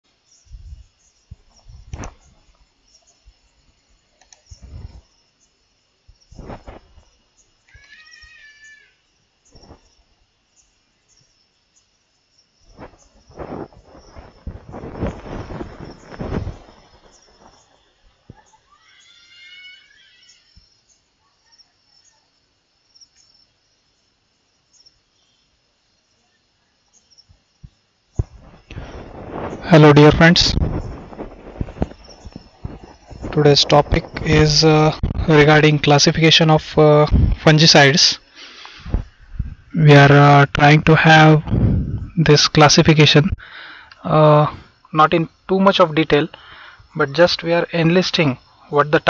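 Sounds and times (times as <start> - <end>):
rustles: 0.2 - 12.0, 12.6 - 22.2, 26.9 - 36.1.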